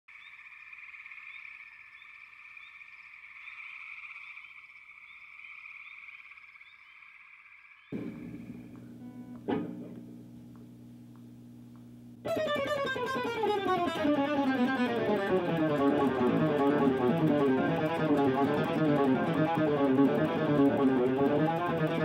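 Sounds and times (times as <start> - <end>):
sharp click: 8.0 - 12.0
electric guitar amp hum: 8.0 - 22.0.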